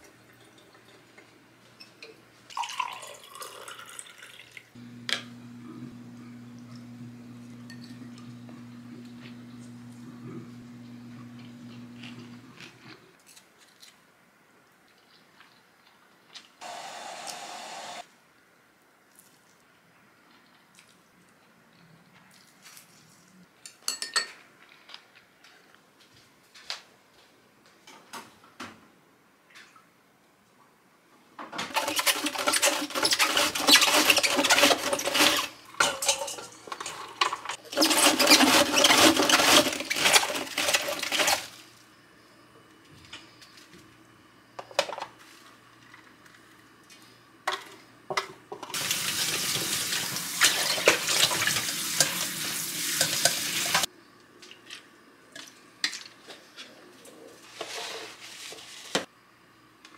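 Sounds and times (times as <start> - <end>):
tap water running into colander: 2.5 - 4.6, 48.7 - 53.9
cabbage shredding on mandoline: 31.7 - 35.6, 37.6 - 41.5.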